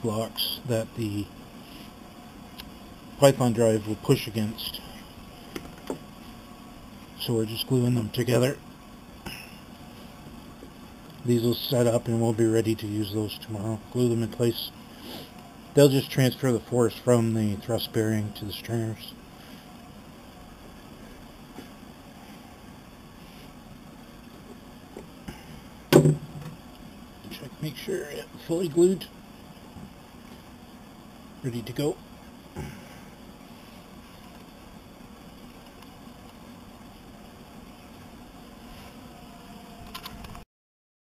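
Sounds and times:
steady low hiss: 0.0s - 40.4s.

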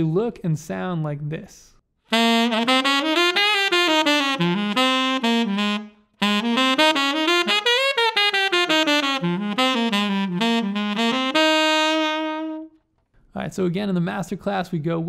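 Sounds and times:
tenor saxophone jazz line: 2.1s - 12.8s.

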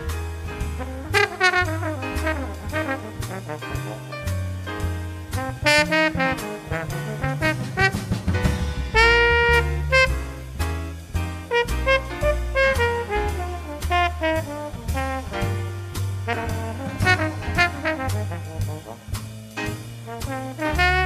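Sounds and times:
swing jazz band: 0.0s - 21.0s
trombone solo: 0.7s - 4.5s, 5.4s - 8.4s, 9.0s - 10.4s, 11.5s - 19.2s, 20.1s - 21.0s.

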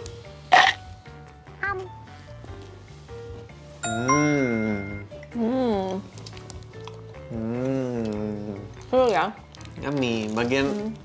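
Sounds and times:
light background music: 0.0s - 11.0s
bright chime: 3.8s - 5.1s
person humming while eating: 7.3s - 8.7s.

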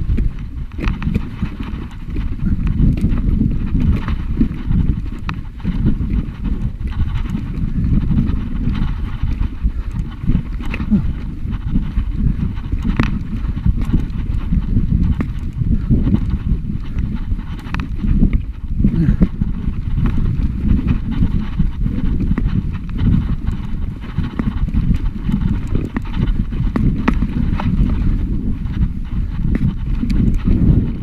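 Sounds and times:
bike rattling: 0.0s - 31.0s
low rumble of vibration: 0.0s - 31.0s.

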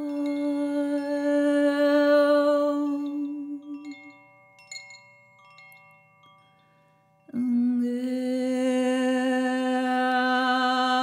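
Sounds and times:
chime bell tones: 2.8s - 7.4s
light chime strikes: 3.6s - 7.4s.

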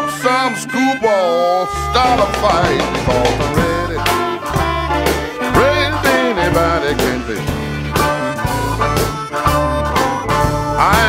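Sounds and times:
electric blues band: 0.0s - 11.0s
harmonica solo with bent notes: 0.0s - 11.0s.

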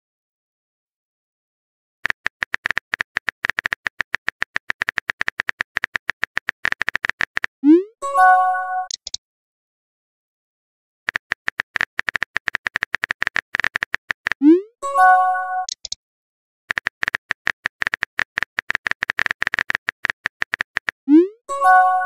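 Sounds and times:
keyboard tap clicks: 2.0s - 7.5s, 8.9s - 9.2s, 11.1s - 14.4s.

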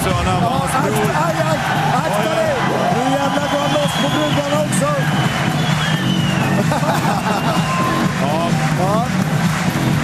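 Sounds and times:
background music: 0.0s - 10.0s
crowd shouting and cheering: 0.0s - 10.0s.

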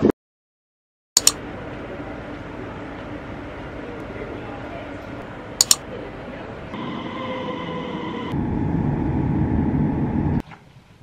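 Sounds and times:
train motor whine: 1.5s - 10.4s
train wheel rumble: 1.5s - 10.4s.

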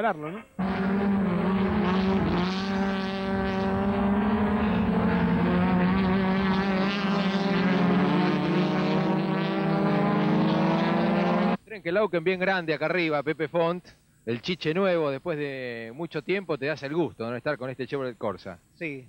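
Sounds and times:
racing car engines at high revs: 0.6s - 11.6s.

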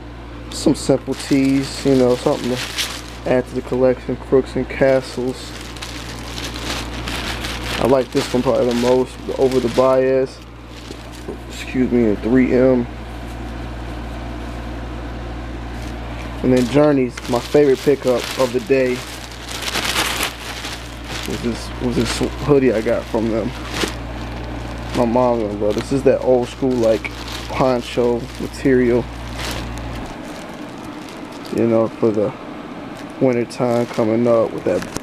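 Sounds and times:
low mechanical hum: 0.0s - 35.0s
steady hiss: 0.5s - 13.9s, 15.6s - 35.0s
fabric rustling: 1.0s - 4.0s, 4.7s - 11.5s, 15.6s - 32.0s.

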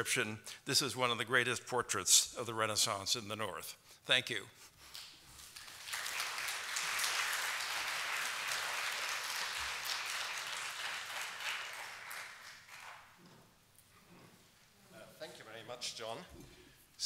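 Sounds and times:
audience applauding: 5.4s - 13.2s.

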